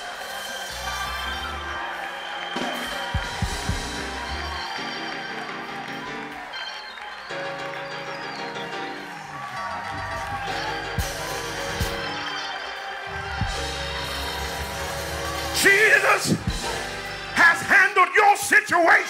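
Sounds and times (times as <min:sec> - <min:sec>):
drum hits: 0:02.6 - 0:04.2, 0:16.3 - 0:17.0
band playing sustained chords: 0:09.8 - 0:18.0.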